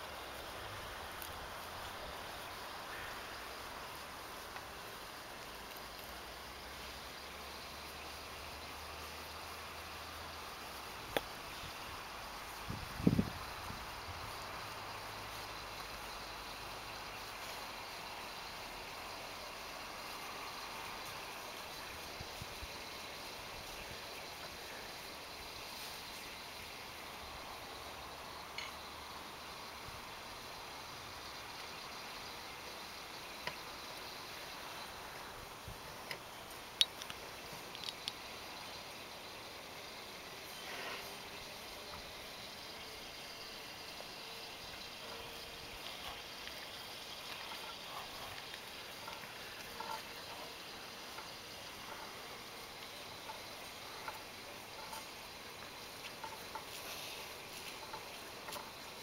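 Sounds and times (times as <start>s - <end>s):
steady outdoor hiss: 0.0s - 59.0s.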